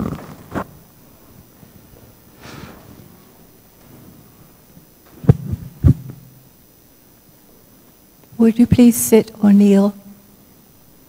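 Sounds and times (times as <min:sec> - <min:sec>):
dull thumps on microphone: 0:05.1 - 0:06.3.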